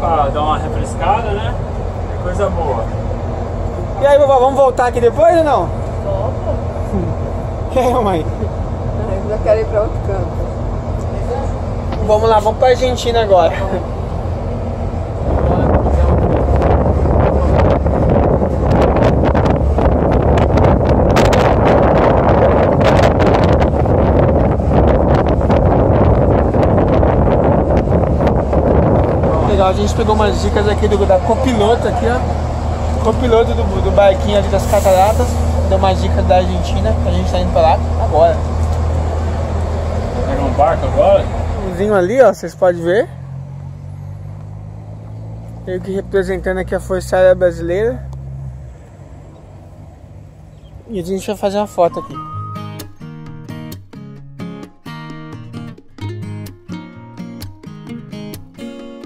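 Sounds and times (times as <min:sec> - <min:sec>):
bus road rumble: 0:00.0 - 0:57.6
vehicle engine humming: 0:00.0 - 0:58.8
wind buffeting microphone: 0:09.8 - 0:42.3.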